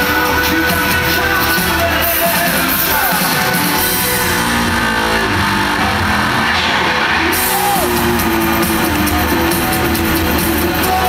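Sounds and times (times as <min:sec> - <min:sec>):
drum kit: 0:00.0 - 0:11.0
electric guitar: 0:00.0 - 0:11.0
live rock band playing: 0:00.0 - 0:11.0.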